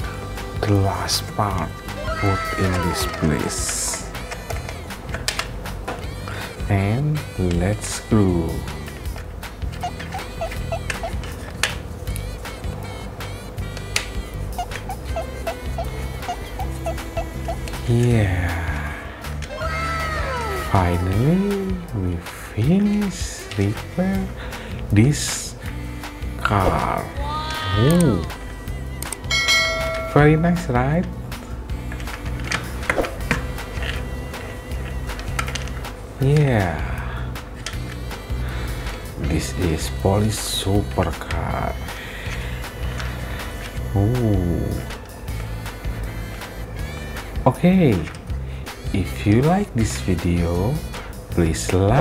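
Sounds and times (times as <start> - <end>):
background music with plucked notes: 0.0 - 52.0.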